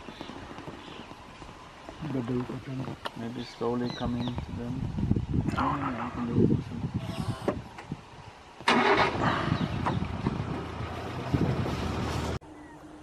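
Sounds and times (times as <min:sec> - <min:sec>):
vehicle engine starting and running: 0:08.6 - 0:12.4.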